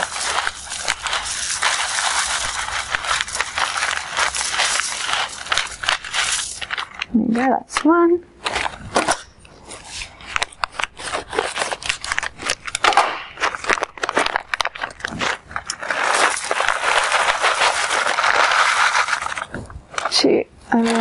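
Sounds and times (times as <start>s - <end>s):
wood chips pouring into metal: 0.0s - 7.0s, 15.8s - 19.5s
crackles and rustles of handling: 0.0s - 21.0s.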